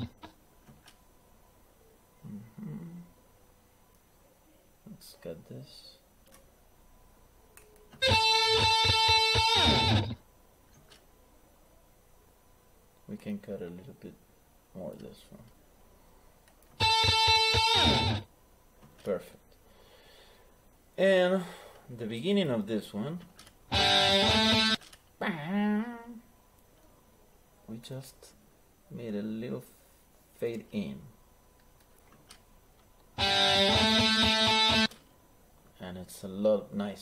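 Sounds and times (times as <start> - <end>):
electric guitar chord: 8.0 - 10.2, 16.8 - 18.2, 23.7 - 24.8, 33.2 - 34.9.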